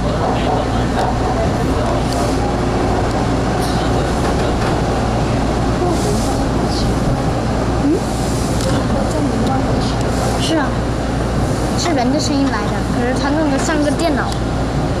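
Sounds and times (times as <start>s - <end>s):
subway train rumbling in tunnel: 0.0s - 15.0s.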